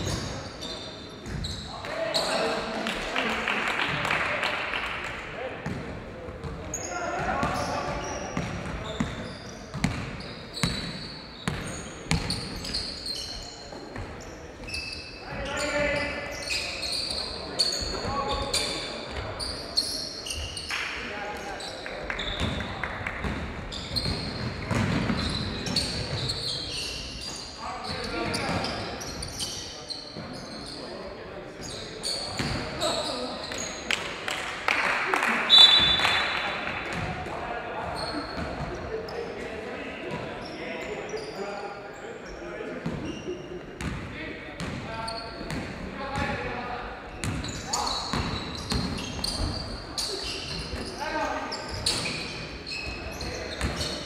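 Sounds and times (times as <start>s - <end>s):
shoe squeaks: 0.0s - 2.6s, 6.6s - 20.7s, 21.4s - 22.7s, 23.7s - 31.0s, 31.6s - 33.8s, 37.8s - 39.4s, 40.4s - 41.6s, 42.3s - 43.6s, 45.0s - 46.3s, 47.1s - 54.0s.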